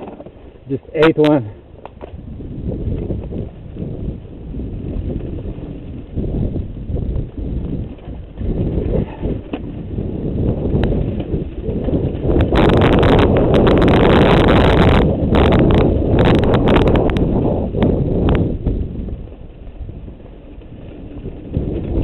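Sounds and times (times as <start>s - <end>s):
bike clattering and rattling: 0.0s - 22.0s
bike tyres rumbling over dirt: 0.0s - 22.0s.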